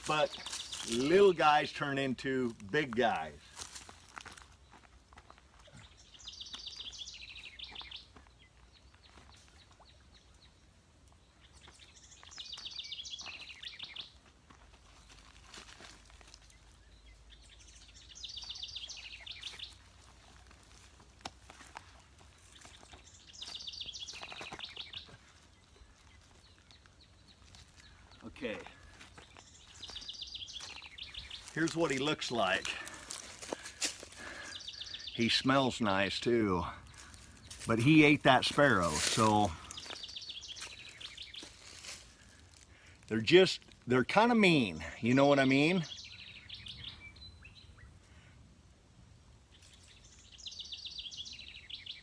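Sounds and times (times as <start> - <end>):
songbird trilling: 11.4 - 14.2, 16.8 - 19.9, 29.3 - 31.6, 38.5 - 41.5, 45.4 - 47.9.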